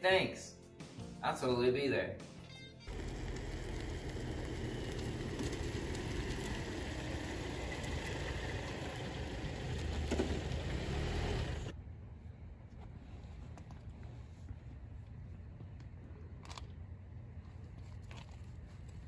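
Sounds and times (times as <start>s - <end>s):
car engine rumbling: 2.9s - 11.8s.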